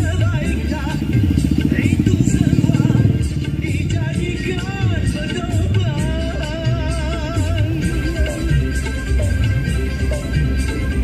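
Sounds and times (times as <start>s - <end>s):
motorcycle engine running: 0.0s - 11.0s
music with singing voice: 0.0s - 11.0s.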